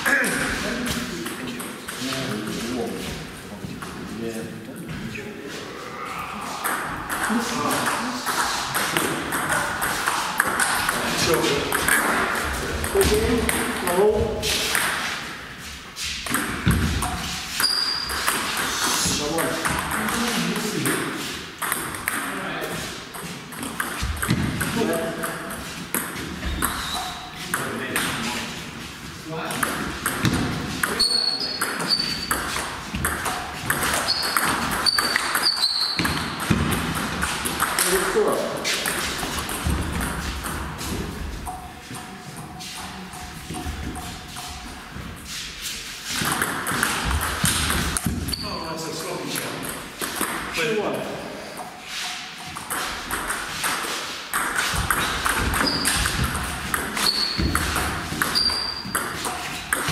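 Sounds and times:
background voices talking: 0.0s - 14.6s.

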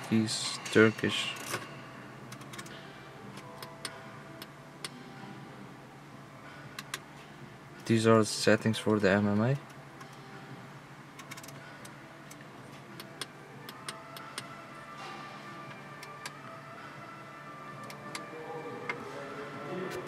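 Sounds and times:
faint background music: 0.0s - 20.0s.

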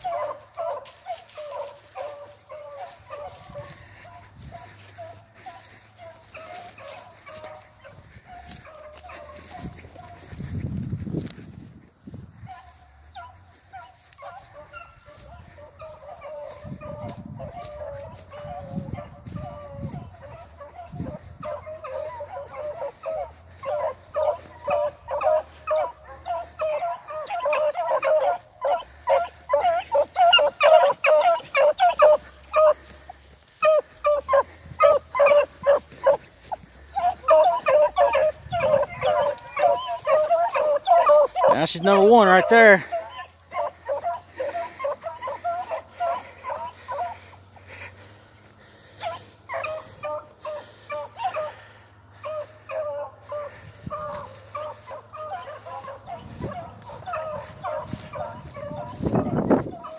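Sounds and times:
hounds barking: 0.0s - 59.9s
hounds howling: 0.0s - 59.9s.

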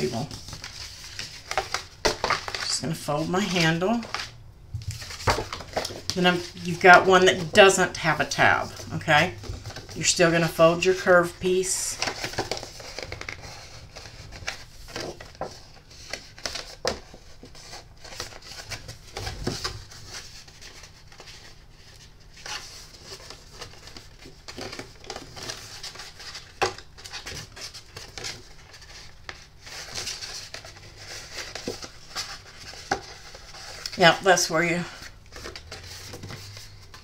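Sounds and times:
paper rustling and scraping: 0.0s - 37.0s.

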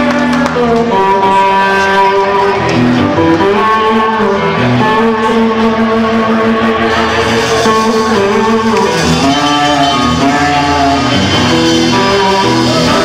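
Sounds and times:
bass: 0.0s - 13.0s
electric guitar sustained notes: 0.0s - 13.0s
drums: 5.5s - 13.0s.

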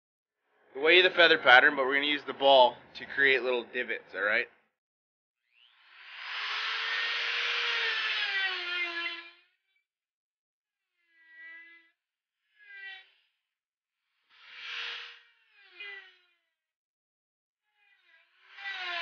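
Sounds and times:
electric grinder whining: 5.7s - 9.6s, 18.2s - 19.0s.

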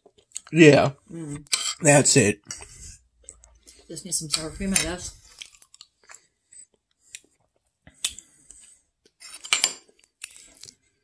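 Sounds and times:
spoon scraping a plate: 1.5s - 1.8s, 9.2s - 9.8s.

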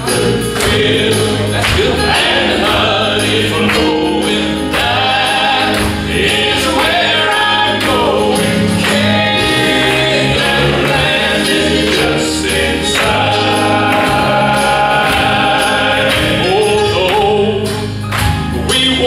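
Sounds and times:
keyboard accompaniment: 0.0s - 19.0s
male quartet singing in harmony: 0.0s - 19.0s.

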